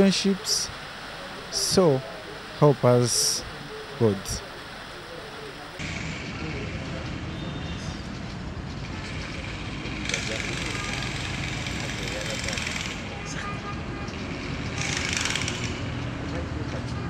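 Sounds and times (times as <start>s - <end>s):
indistinct voices: 0.0s - 5.8s.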